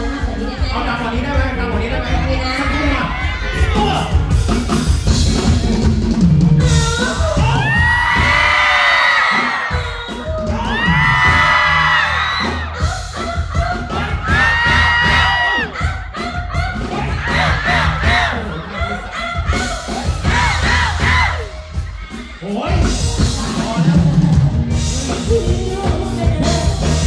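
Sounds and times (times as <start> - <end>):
live pop band music: 0.0 - 27.0
crowd cheering: 7.4 - 22.6.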